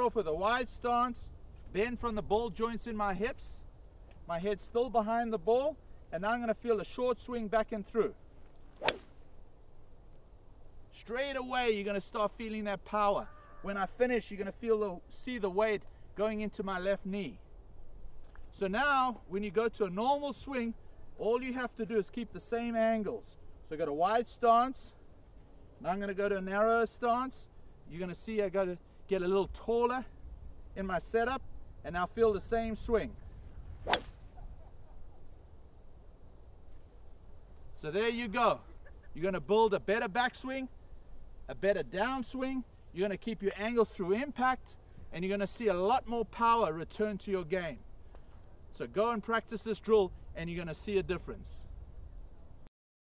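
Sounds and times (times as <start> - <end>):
golf club striking ball: 8.8 - 9.3, 33.8 - 34.3
faint low rumble: 24.9 - 45.7.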